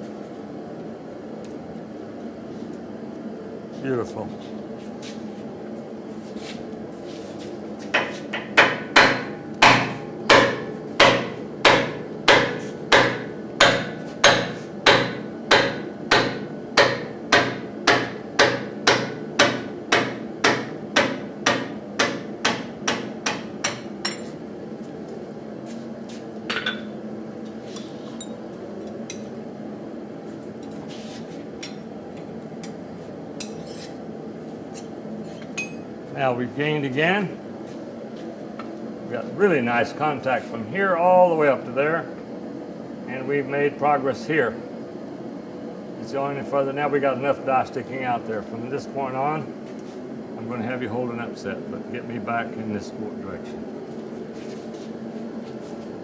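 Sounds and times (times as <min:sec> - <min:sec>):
steady machine hum: 0:00.0 - 0:56.0
hammering on metal: 0:08.0 - 0:24.2.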